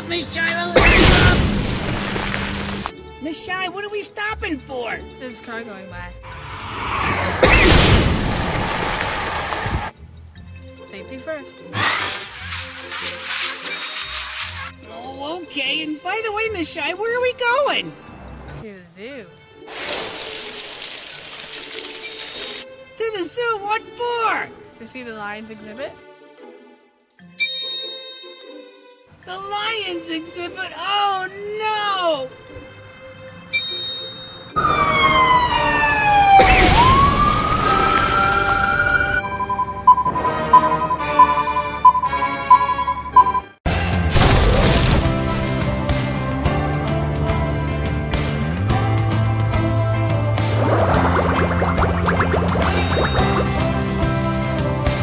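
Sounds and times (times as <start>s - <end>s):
car tyres hissing on wet road: 1.3s - 2.9s, 7.4s - 9.9s, 19.7s - 22.5s
loud rushing burst of noise: 6.2s - 9.9s
ambulance siren wailing: 34.6s - 42.8s
ringing tone: 39.2s - 43.5s.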